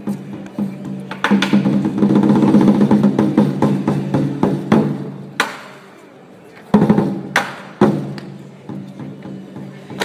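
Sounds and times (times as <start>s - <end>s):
fast drum strokes: 0.0s - 5.0s.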